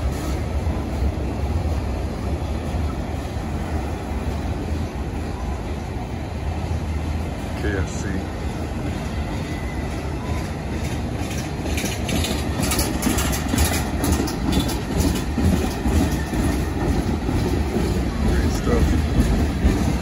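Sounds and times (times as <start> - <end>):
train wheels rumbling on rail: 0.0 - 20.0.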